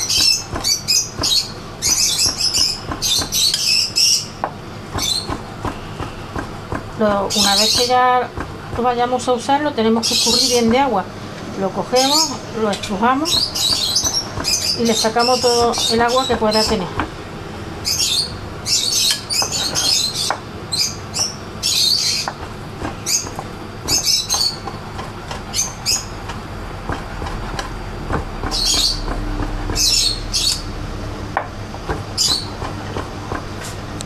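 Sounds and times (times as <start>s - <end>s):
knife chopping on wooden board: 0.0s - 3.7s, 4.4s - 9.3s, 13.3s - 17.2s, 22.2s - 30.6s, 31.4s - 33.8s
birds chirping: 0.0s - 34.0s.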